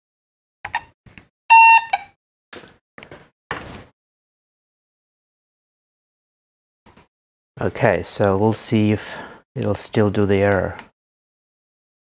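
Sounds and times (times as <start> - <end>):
patient monitor beep: 1.5 - 2.0.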